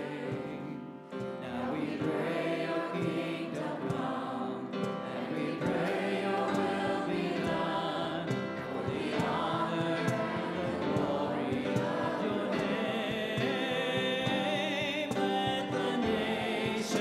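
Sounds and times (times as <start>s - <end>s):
group singing worship song: 0.0s - 17.0s.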